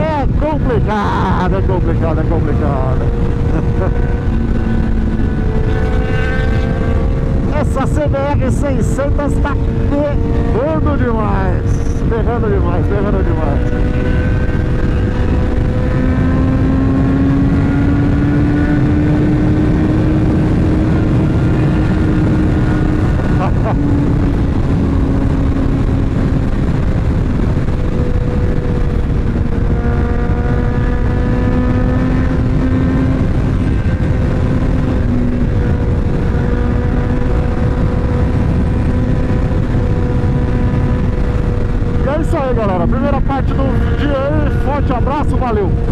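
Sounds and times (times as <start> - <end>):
motorcycle engine cruising: 0.0 - 45.9
wind rush: 0.0 - 45.9.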